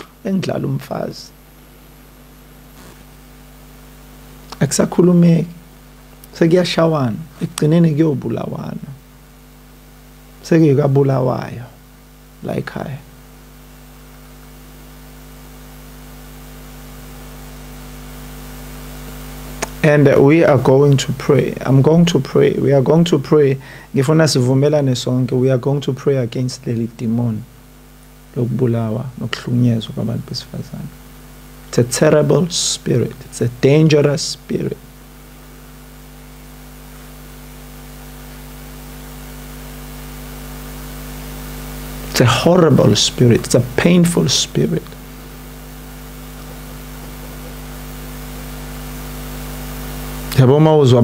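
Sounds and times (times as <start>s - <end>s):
background hiss: 0.0s - 51.0s
electrical mains hum: 0.0s - 51.0s.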